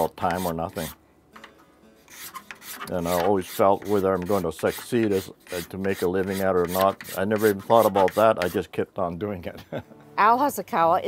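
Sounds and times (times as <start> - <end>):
hand scraper scraping wood: 0.0 - 1.0, 2.1 - 8.7.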